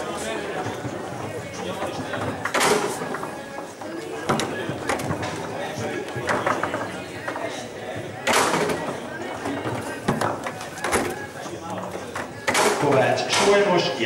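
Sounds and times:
crowd chatter in a hall: 0.0 - 14.0
foosball rods clacking: 0.7 - 7.6, 8.2 - 13.6.

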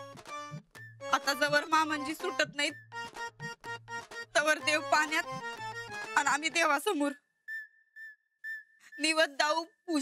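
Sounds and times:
high whistle-like notes: 7.4 - 9.2.

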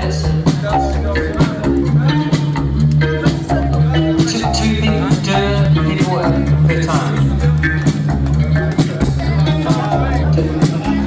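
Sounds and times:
rock band playing: 0.0 - 11.0
person singing: 3.2 - 8.0.

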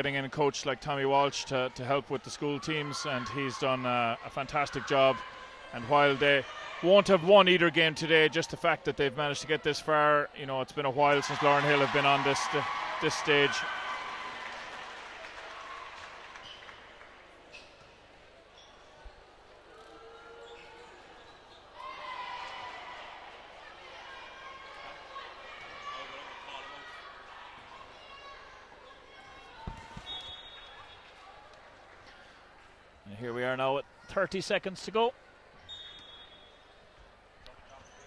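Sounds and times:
crowd noise: 0.0 - 38.0.

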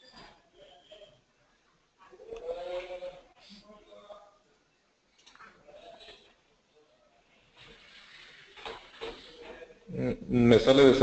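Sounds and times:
faint microphone hiss: 0.0 - 11.0.

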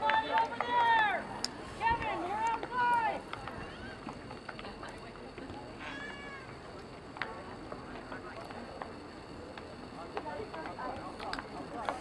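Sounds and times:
players calling and shouting: 0.0 - 4.4
outdoor background noise: 0.0 - 12.0.

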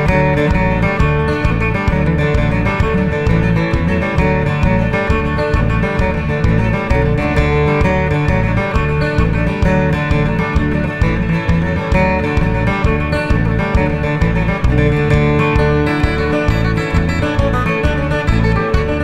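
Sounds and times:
acoustic guitar playing a jig: 0.0 - 19.0.

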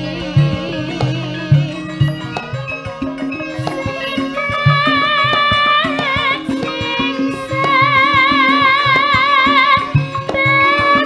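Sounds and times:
girl singing with vibrato: 0.0 - 2.8, 3.4 - 11.0
gamelan bronze and drum notes: 0.0 - 11.0.

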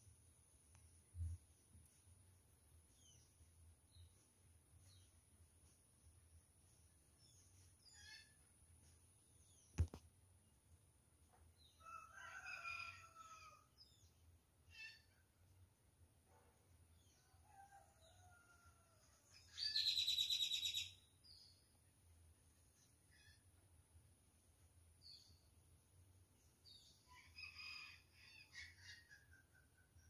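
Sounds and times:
rooster crowing: 11.8 - 13.7.

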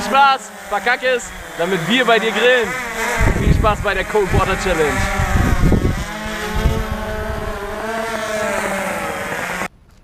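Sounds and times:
drone rotors buzzing: 0.0 - 9.7.

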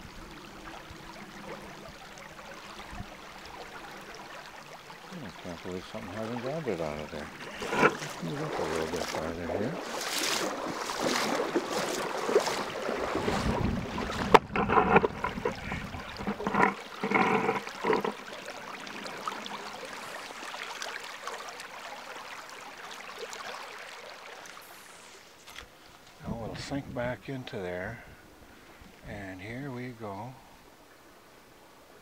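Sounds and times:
shallow river running water: 0.0 - 32.0.

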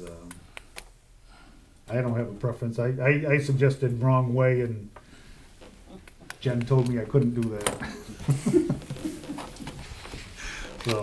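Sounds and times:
people chuckling: 7.8 - 10.6.

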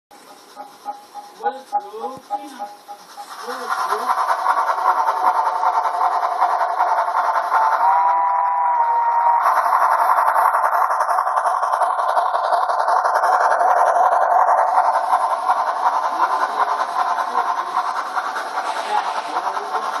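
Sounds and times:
model train motor whine: 0.2 - 20.0
wheels clattering on rails: 9.4 - 20.0.

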